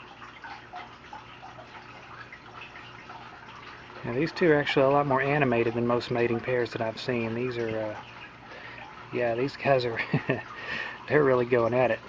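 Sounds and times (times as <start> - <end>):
small drip-like ticks: 0.0 - 12.0.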